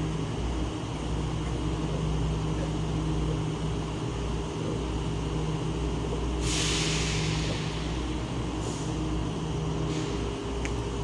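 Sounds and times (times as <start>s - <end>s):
low mechanical hum: 0.0s - 11.0s
hiss: 6.4s - 9.0s, 9.9s - 10.2s.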